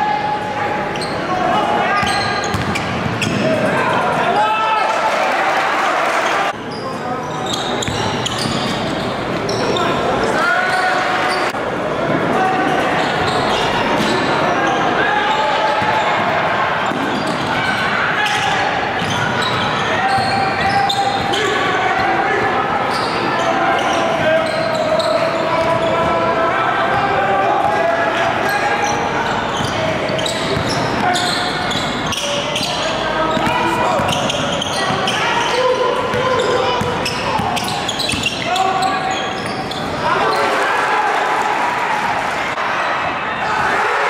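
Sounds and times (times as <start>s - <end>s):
crowd and players voices echoing: 0.0s - 44.0s
basketball bouncing on wooden floor: 2.5s - 2.8s.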